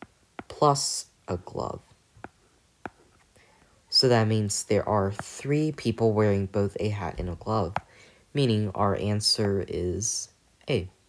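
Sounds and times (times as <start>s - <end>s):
person speaking: 0.0s - 11.0s
stylus tapping on glass screen: 2.2s - 3.0s.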